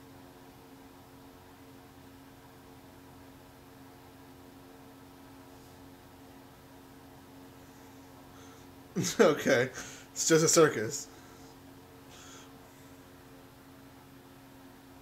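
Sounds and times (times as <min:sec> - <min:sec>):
faint room tone hum and hiss: 0:00.0 - 0:15.0.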